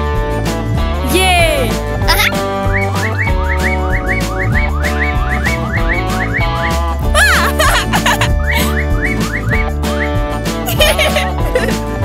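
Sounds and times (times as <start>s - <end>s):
cartoon background music: 0.2s - 12.0s.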